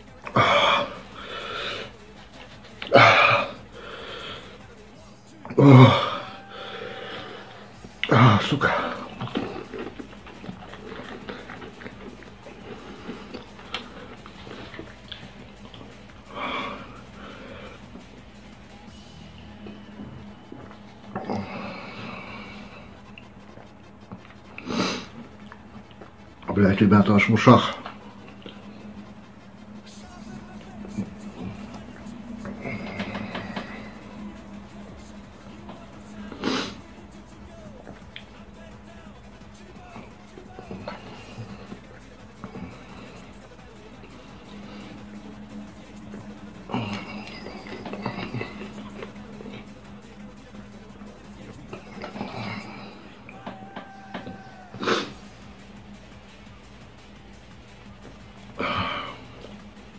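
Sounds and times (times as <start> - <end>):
man breathing hard and blowing: 0.0 - 4.8, 5.6 - 26.5
low steady hum: 0.0 - 59.9
soft background music: 0.0 - 59.9.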